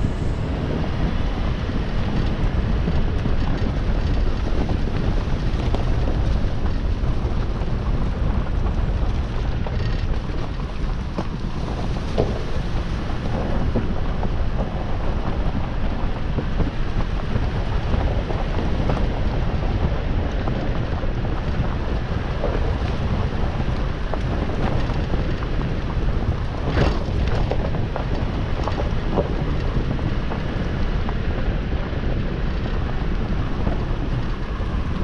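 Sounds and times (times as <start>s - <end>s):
vehicle driving on dirt trail: 0.0s - 35.0s.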